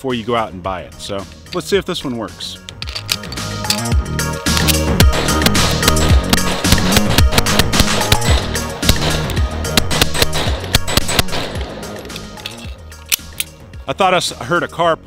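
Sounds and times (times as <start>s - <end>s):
background music: 0.0s - 15.0s
pistol shots echoing: 5.1s - 12.0s.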